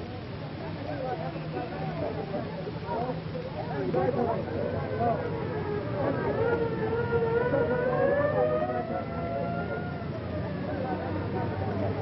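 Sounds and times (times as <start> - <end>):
steady background noise: 0.0 - 12.0
siren wailing: 4.8 - 11.5.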